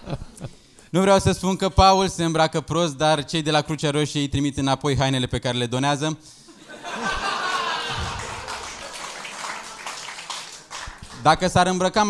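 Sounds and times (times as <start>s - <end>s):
audience laughing: 6.6s - 9.9s.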